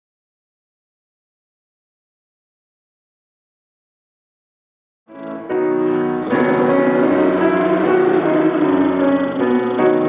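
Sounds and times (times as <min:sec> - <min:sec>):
piano playing sustained chords: 0:05.1 - 0:10.0.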